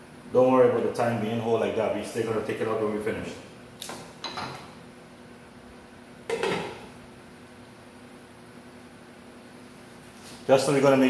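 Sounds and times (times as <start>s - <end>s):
glass lid clattering on metal pot: 6.3s - 6.8s.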